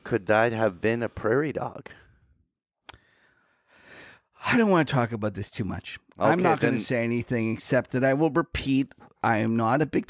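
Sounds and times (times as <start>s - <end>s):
soft breath: 3.0s - 4.3s.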